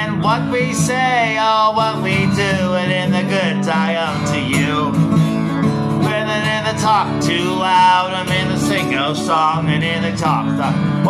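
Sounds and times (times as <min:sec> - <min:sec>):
acoustic guitar strumming: 0:00.0 - 0:11.0
bending guitar melody line: 0:00.0 - 0:11.0.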